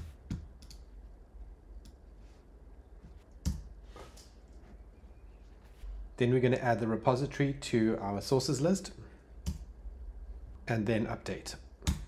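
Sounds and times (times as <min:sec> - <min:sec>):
keyboard and mouse clicks: 0:00.0 - 0:00.9
faint low hum: 0:00.0 - 0:12.0.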